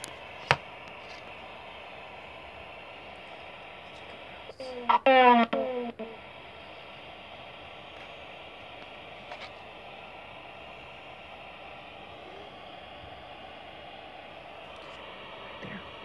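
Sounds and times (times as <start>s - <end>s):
radio static hiss: 0.0s - 16.0s.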